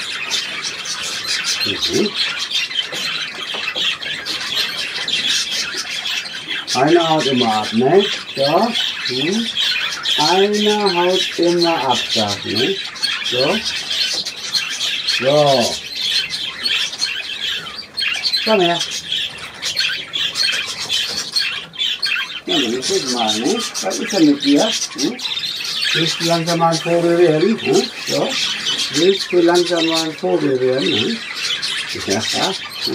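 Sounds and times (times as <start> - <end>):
budgerigars chattering and squawking: 0.0 - 32.9.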